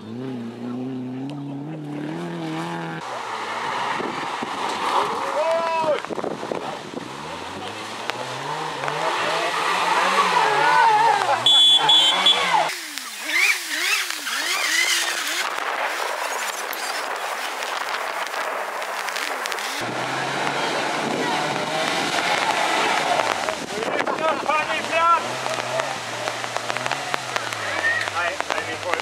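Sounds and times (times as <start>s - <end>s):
car engine revving: 0.0s - 16.2s, 17.8s - 29.0s.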